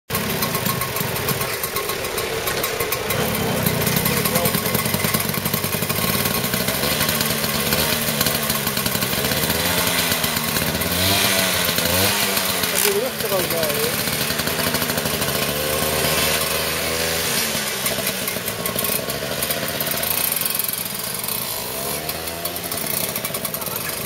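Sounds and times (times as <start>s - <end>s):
moped engine running: 0.1s - 24.0s.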